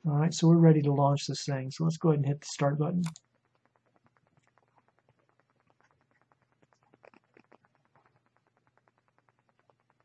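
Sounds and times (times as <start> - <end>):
faint rapid ticking: 0.0 - 10.0.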